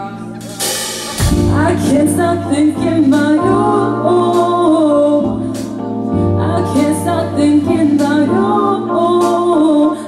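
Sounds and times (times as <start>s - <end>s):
keyboard chords: 0.0s - 10.0s
woman singing: 1.2s - 10.0s.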